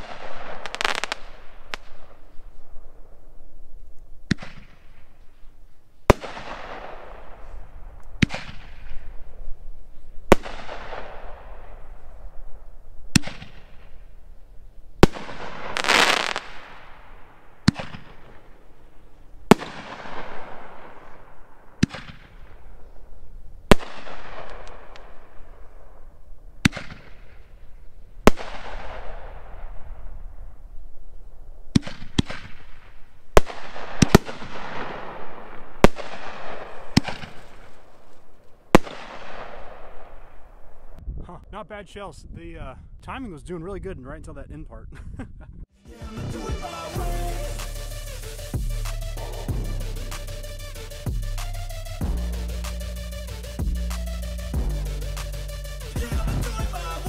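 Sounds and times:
firework shells bursting with bangs: 0:00.0 - 0:03.2, 0:04.2 - 0:05.2, 0:06.0 - 0:09.5, 0:10.2 - 0:12.4, 0:13.1 - 0:14.2, 0:15.0 - 0:23.0, 0:23.6 - 0:26.0, 0:31.7 - 0:41.0.

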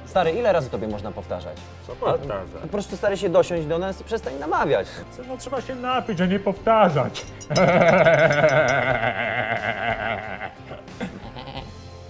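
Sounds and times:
man wailing: 0:07.6 - 0:11.7.

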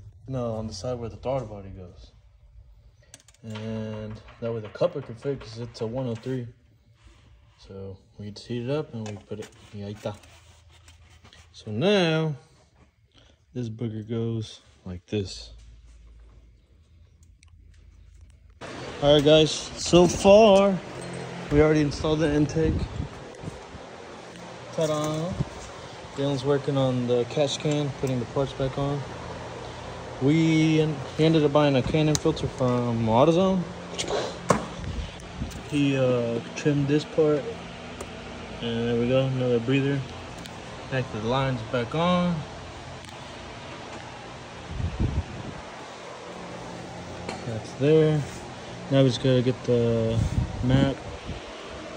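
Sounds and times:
low steady hum: 0:00.0 - 0:51.9
steady background hiss: 0:00.0 - 0:51.9.

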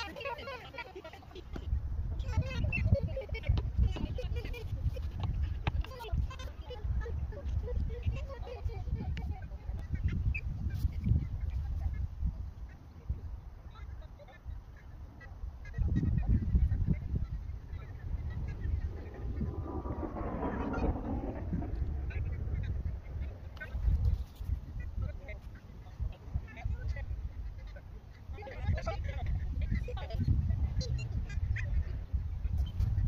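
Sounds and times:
wind buffeting microphone: 0:01.3 - 0:33.0.

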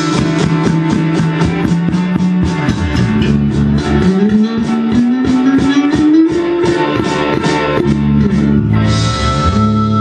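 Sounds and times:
bass guitar: 0:00.0 - 0:10.0
electric guitar: 0:00.0 - 0:10.0.

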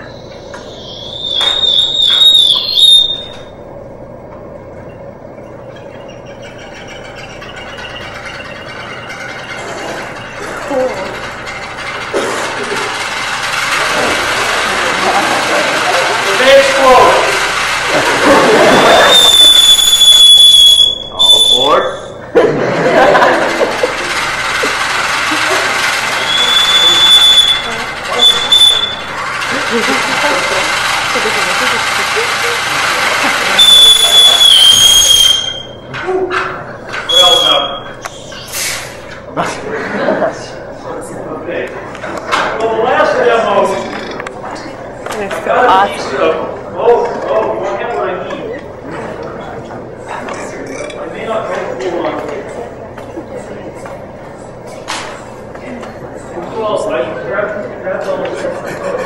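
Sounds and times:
high steady whistle: 0:00.0 - 0:03.6, 0:18.2 - 0:22.2, 0:26.1 - 0:29.2, 0:33.3 - 0:35.9, 0:37.0 - 0:38.5
voices: 0:04.3 - 0:59.0.

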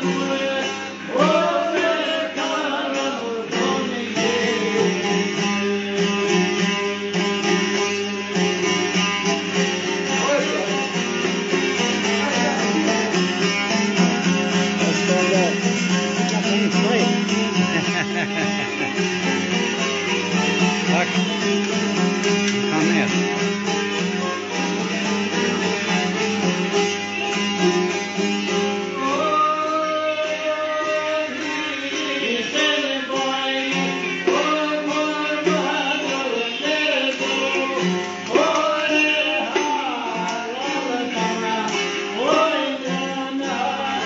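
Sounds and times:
man singing: 0:00.0 - 0:09.0, 0:14.1 - 0:21.4, 0:22.5 - 0:23.4, 0:28.8 - 0:44.0
lute tremolo folk melody: 0:00.0 - 0:44.0.

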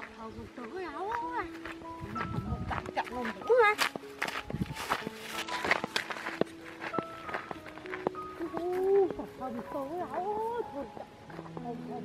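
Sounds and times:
footsteps through grass: 0:00.0 - 0:12.0
music of held notes: 0:00.0 - 0:12.0.

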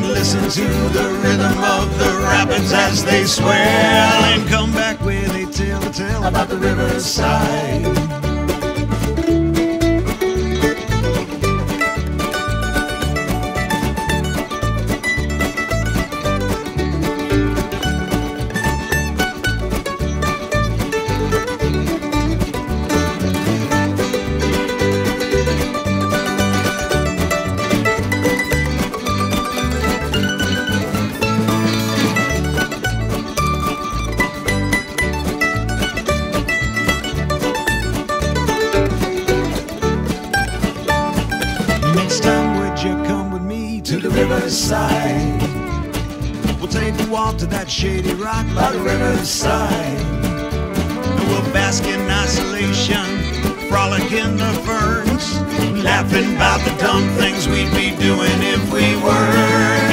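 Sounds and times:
plucked string instruments: 0:00.0 - 0:59.9.

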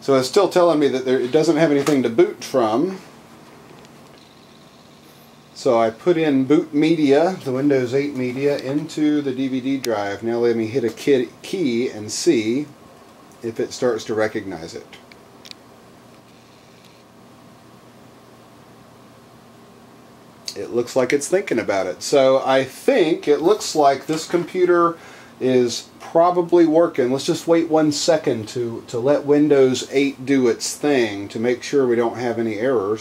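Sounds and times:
computer case fans whirring: 0:00.0 - 0:33.0.

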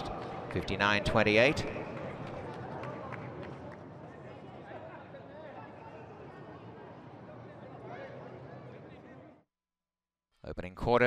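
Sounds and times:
faint crowd chatter: 0:00.0 - 0:09.4
steady background noise: 0:00.0 - 0:09.4.

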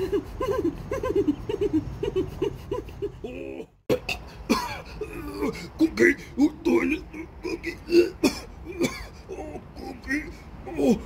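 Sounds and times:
man groaning in gravelly voice: 0:03.3 - 0:11.0
man coughing: 0:03.9 - 0:05.7, 0:07.5 - 0:09.6.

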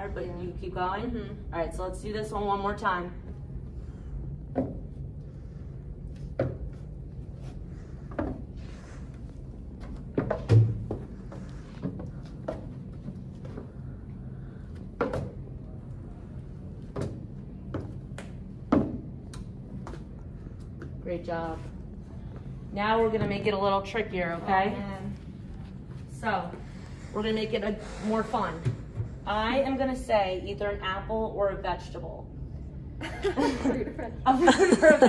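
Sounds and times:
footsteps on wooden stairs: 0:09.8 - 0:13.8.

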